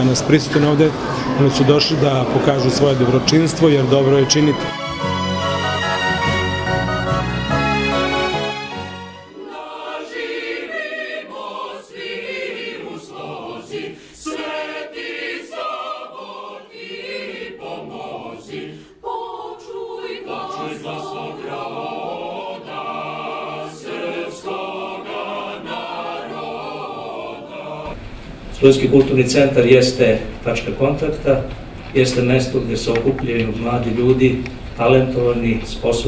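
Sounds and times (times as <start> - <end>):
mixed choir singing unaccompanied: 0.0 - 28.0.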